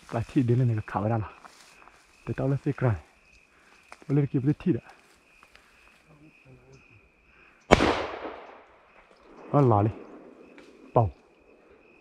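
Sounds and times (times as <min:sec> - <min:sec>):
sharp gunshot: 0:07.7 - 0:08.6.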